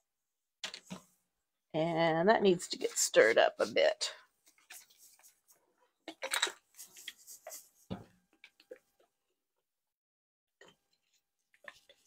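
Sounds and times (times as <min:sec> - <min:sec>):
paint stirred in plastic cup: 0:04.4 - 0:09.2, 0:10.6 - 0:12.0.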